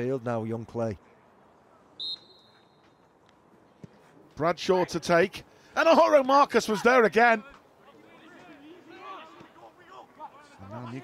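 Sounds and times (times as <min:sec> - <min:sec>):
referee's whistle blast: 0:02.0 - 0:02.8.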